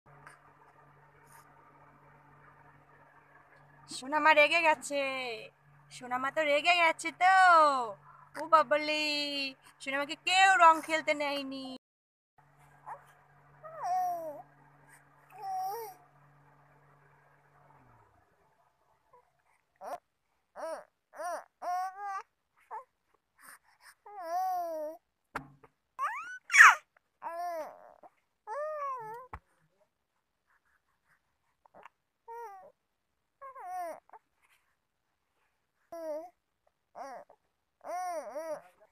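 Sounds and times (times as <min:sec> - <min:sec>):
faint low hum: 0:00.1 - 0:11.8, 0:12.4 - 0:25.0
baby whimpering: 0:13.6 - 0:14.4, 0:15.3 - 0:16.0, 0:19.1 - 0:25.0, 0:26.0 - 0:29.4, 0:31.6 - 0:32.8, 0:33.4 - 0:34.4, 0:35.8 - 0:38.9
baby squeak: 0:26.0 - 0:27.9.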